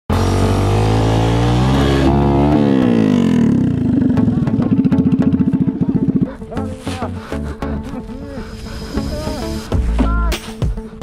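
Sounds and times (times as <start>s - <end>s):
motorcycle engine revving and idling: 0.1s - 7.2s.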